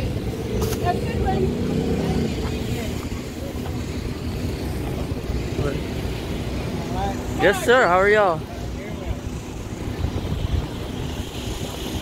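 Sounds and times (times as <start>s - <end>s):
road traffic rumble: 0.0s - 12.0s
vehicle engine hum: 0.0s - 12.0s.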